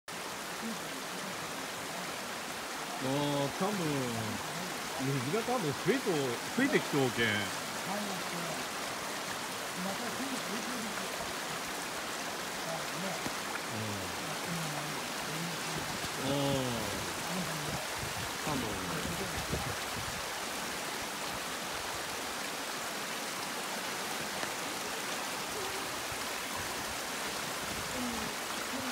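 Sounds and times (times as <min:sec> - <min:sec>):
floodwater rushing down street: 0:00.1 - 0:28.9.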